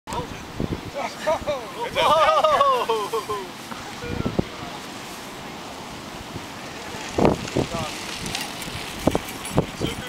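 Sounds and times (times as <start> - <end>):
people laughing: 1.0 - 4.2.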